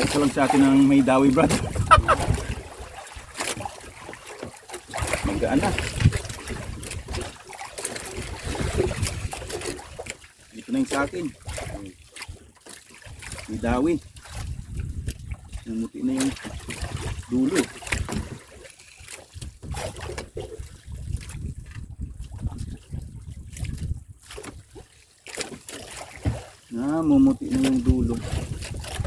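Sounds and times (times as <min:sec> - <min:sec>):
water lapping against a boat: 0:00.0 - 0:29.0
man laughing: 0:01.9 - 0:02.4
man talking: 0:26.7 - 0:28.2.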